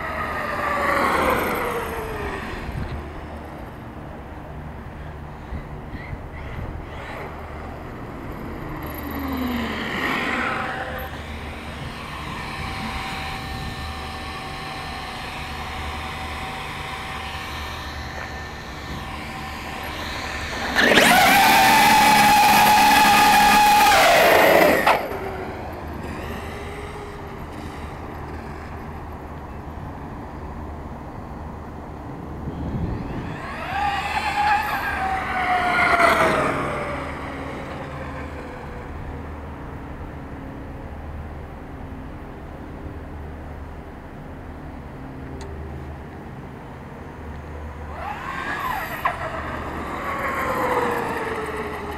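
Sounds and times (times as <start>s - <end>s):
electric toy truck motor whining: 0.0s - 3.6s, 5.9s - 29.5s, 32.4s - 39.7s, 47.7s - 51.9s.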